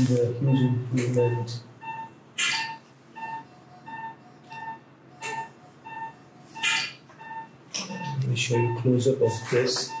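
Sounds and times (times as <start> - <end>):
patient monitor beeping: 0.0 - 10.0.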